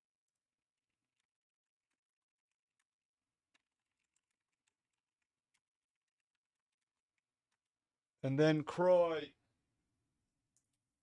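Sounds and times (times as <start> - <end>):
keyboard typing: 1.0 - 7.7.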